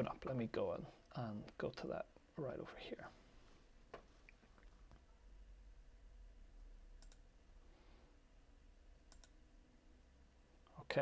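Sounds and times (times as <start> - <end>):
mouse clicks: 7.0 - 7.2, 9.1 - 9.4.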